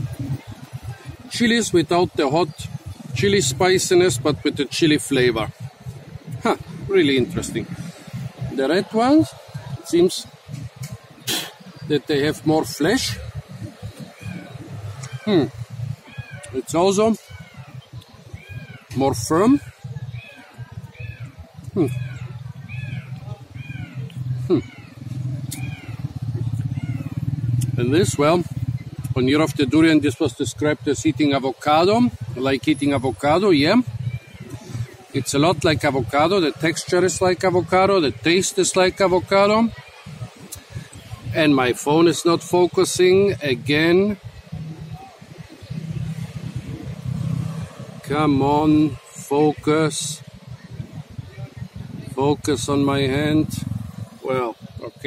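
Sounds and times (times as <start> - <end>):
vehicle engine rumbling: 0.0 - 55.0
small animal calling: 13.9 - 27.5.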